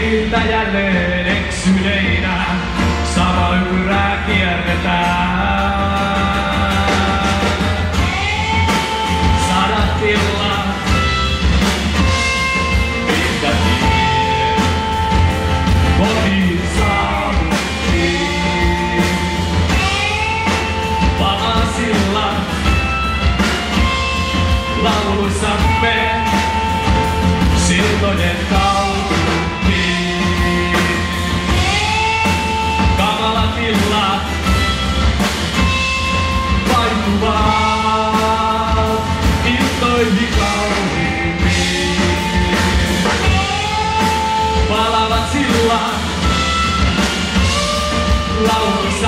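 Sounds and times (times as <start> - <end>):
drum beat: 0.0 - 49.0
live rock band playing: 0.0 - 49.0.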